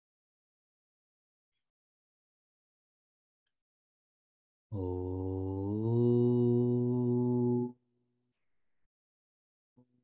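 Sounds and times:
man chanting: 4.7 - 7.8.

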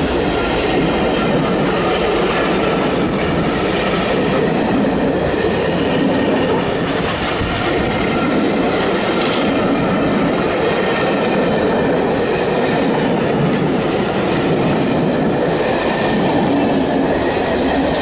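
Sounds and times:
train wheels on rails: 0.0 - 18.0.

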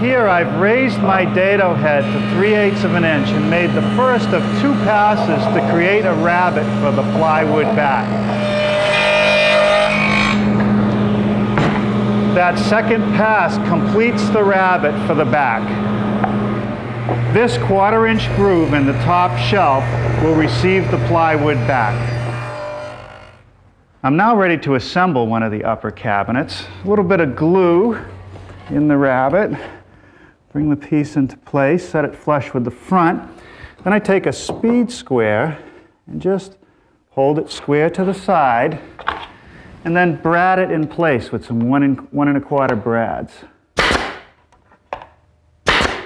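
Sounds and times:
table saw humming: 0.0 - 23.5
nailer shots: 43.8 - 46.0.

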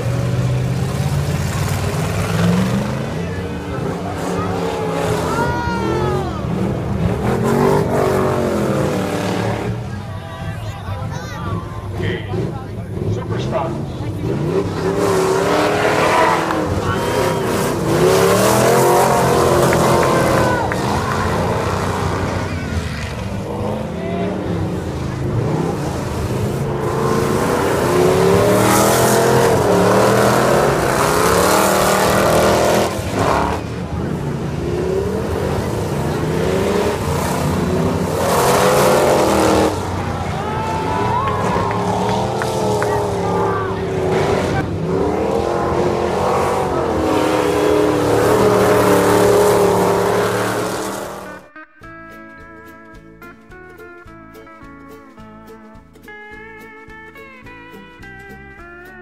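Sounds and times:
race car engines revving: 0.0 - 51.6
tire noise: 0.0 - 59.0.

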